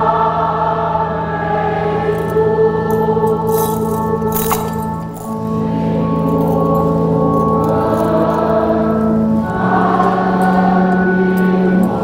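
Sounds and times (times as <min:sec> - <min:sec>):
choir singing sacred music: 0:00.0 - 0:12.0.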